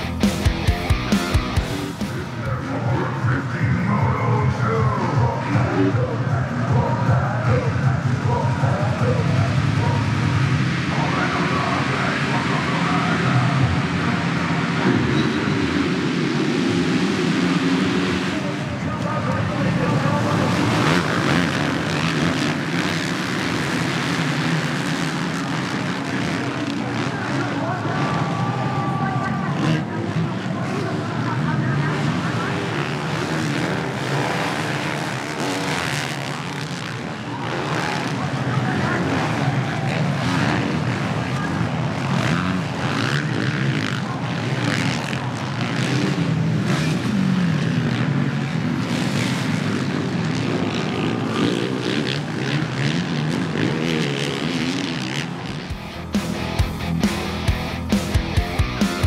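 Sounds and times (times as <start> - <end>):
motocross bikes racing: 0.0 - 59.0.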